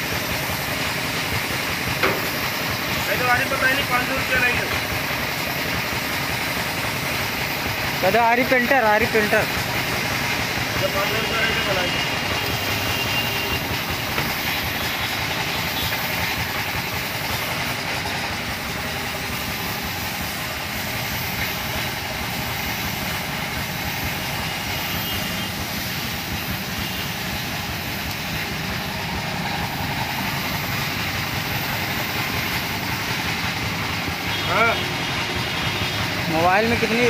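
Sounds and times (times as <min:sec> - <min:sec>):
paint spray gun hissing: 0:00.0 - 0:37.0.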